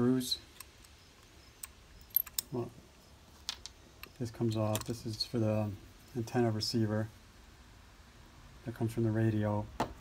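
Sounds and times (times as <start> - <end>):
metal and plastic parts clicking: 0.5 - 2.5, 3.4 - 5.0.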